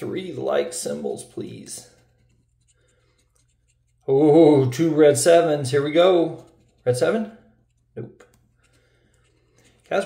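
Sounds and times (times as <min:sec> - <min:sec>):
scratching on lottery ticket: 0:00.1 - 0:10.0.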